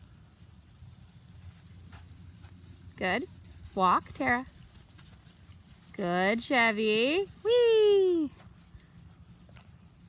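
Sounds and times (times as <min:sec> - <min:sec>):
low uneven rumble: 0:00.0 - 0:10.0.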